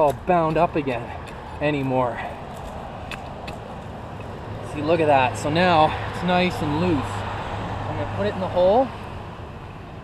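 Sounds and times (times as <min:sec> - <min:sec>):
roots and compost rustling: 0:00.0 - 0:07.2
outdoor background noise: 0:00.0 - 0:10.0.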